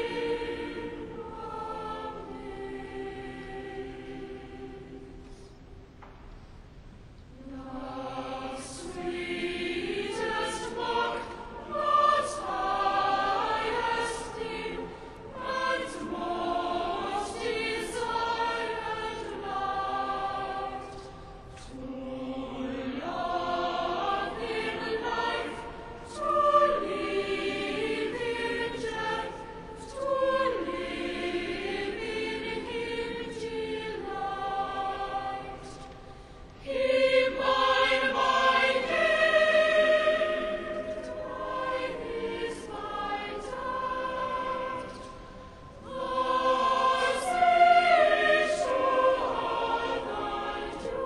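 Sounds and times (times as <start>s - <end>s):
choir singing: 0.0s - 5.8s, 7.3s - 51.0s.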